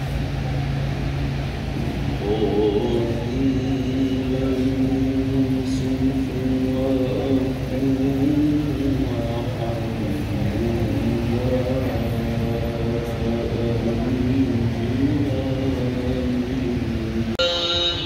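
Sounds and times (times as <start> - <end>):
steady low rumble: 0.0 - 17.4
man chanting melodically: 1.8 - 18.0.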